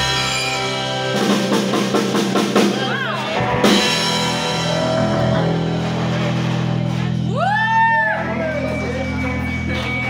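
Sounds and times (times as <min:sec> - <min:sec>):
band chord on guitars and bass: 0:00.0 - 0:10.0.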